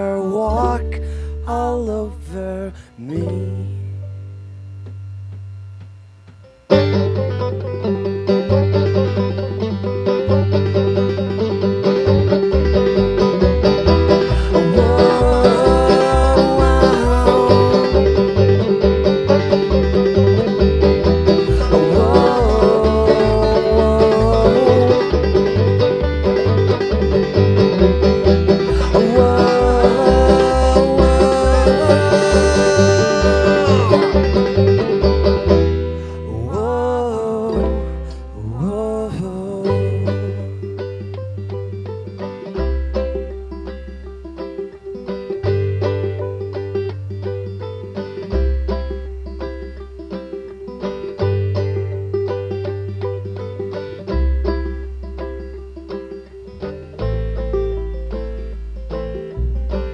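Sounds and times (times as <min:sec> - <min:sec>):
bluegrass string band music: 0:00.0 - 0:03.7, 0:06.6 - 0:59.9
plucked upright bass: 0:00.0 - 0:59.9
fast banjo runs: 0:06.7 - 0:59.9.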